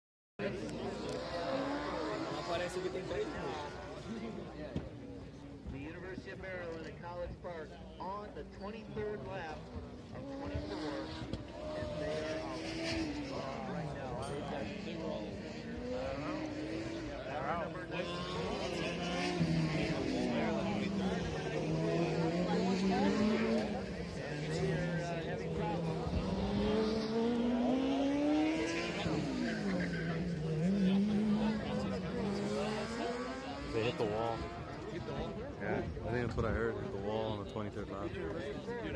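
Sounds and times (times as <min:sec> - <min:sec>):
race car engine: 0:00.4 - 0:38.9.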